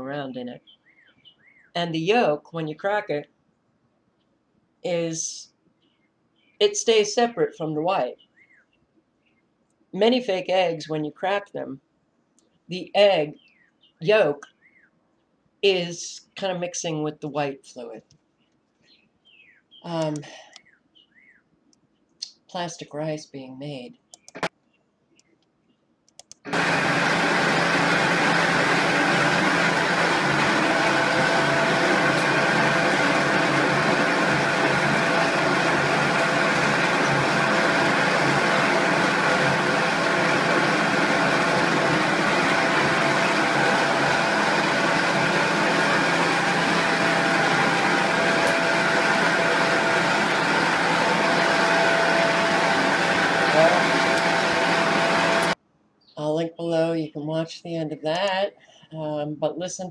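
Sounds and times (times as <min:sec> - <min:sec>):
factory machinery drone: 0:26.5 - 0:55.6
machine whining tones: 0:26.5 - 0:55.6.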